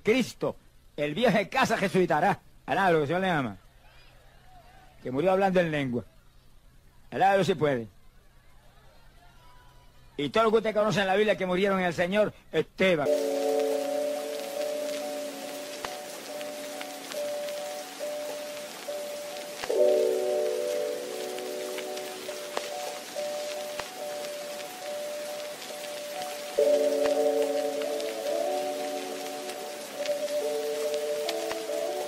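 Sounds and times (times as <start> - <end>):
steady rain-like hiss: 0.0 - 32.0
soft sustained music chords: 13.0 - 32.0.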